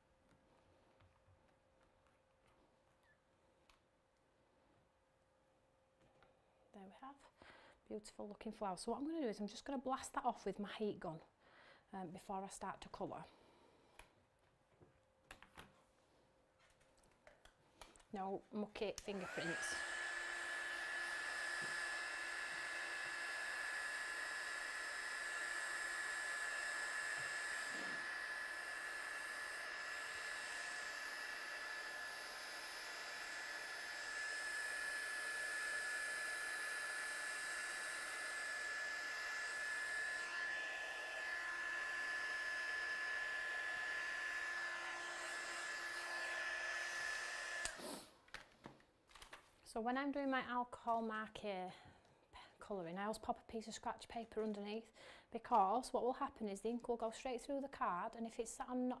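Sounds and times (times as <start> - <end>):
heat gun blowing: 19.0 - 48.2.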